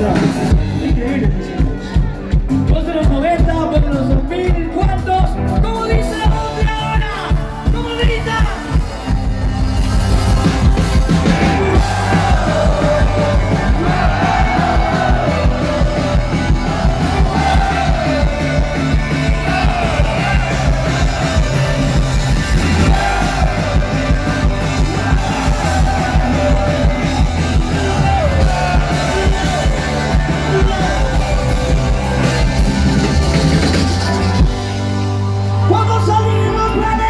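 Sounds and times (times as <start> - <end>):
live rock band: 0.0 - 37.0
crowd yelling along: 6.6 - 37.0.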